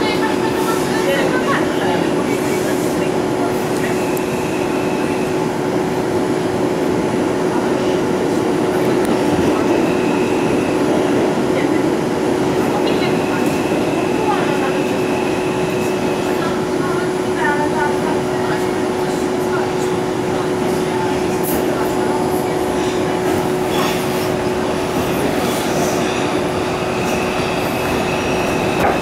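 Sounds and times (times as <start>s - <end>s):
wheels rumbling on rail: 0.0s - 29.0s.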